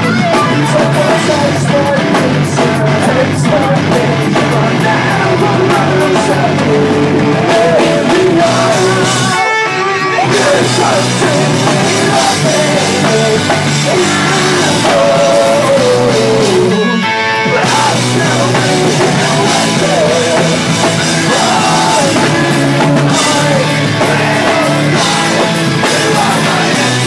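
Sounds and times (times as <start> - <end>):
live rock band playing: 0.0 - 27.0
man singing: 0.0 - 27.0.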